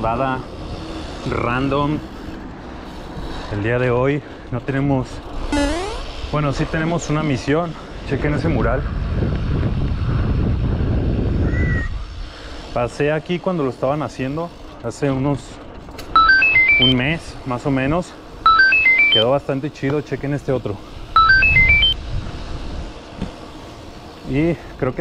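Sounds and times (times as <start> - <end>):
electronic beeping jingle: 5.5 - 6.0, 16.2 - 17.1, 18.5 - 19.3, 21.2 - 22.0
wind buffeting microphone: 8.0 - 12.4, 22.0 - 23.0.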